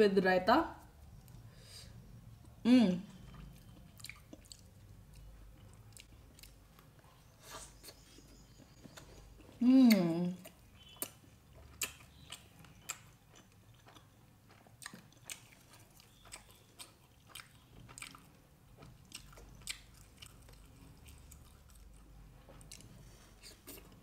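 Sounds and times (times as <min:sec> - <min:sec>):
chewing soft food: 0:02.2 - 0:24.0.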